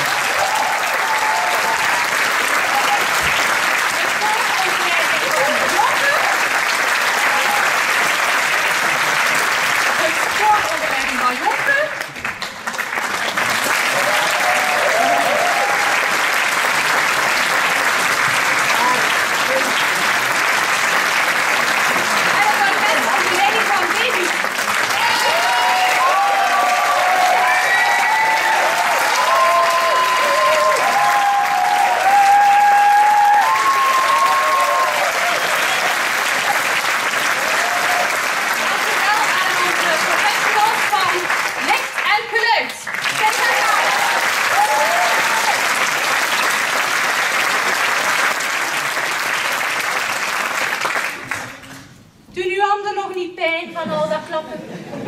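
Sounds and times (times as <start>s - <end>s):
audience applauding: 0.0s - 52.0s.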